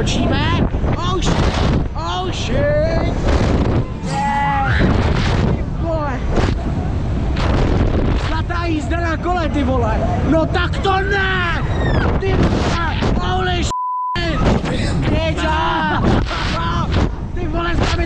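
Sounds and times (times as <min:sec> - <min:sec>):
wind rumble on microphone: 0:00.0 - 0:18.0
riders screaming and shouting: 0:02.4 - 0:05.6, 0:08.8 - 0:13.5, 0:14.3 - 0:17.3.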